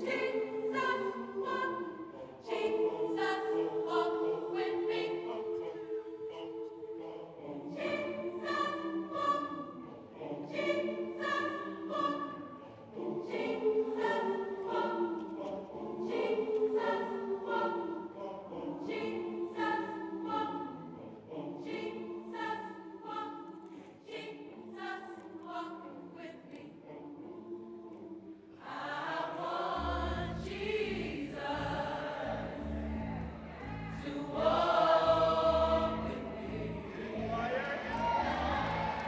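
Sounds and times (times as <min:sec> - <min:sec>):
gospel choir singing: 0:00.0 - 0:39.0.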